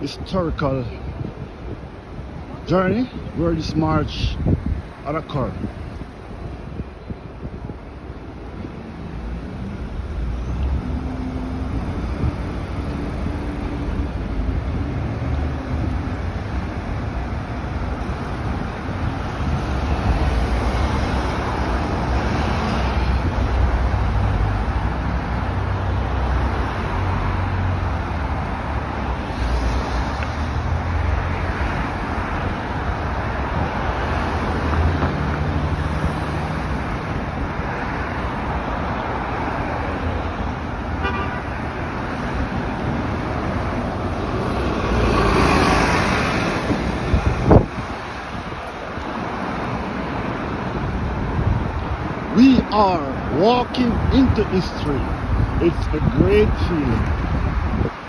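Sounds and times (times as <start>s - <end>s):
car engines in traffic: 0.0s - 58.0s.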